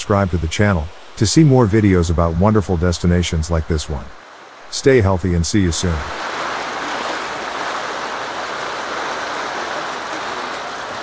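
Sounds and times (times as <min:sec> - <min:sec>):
fast-flowing river water: 0:04.1 - 0:11.0.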